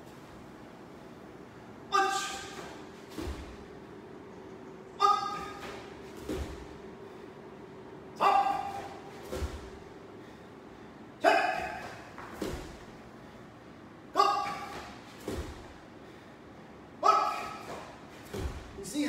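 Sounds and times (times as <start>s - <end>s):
man shouting sharply: 1.9s - 2.6s, 5.0s - 5.6s, 8.2s - 9.0s, 11.2s - 11.8s, 14.1s - 14.8s, 17.0s - 17.6s.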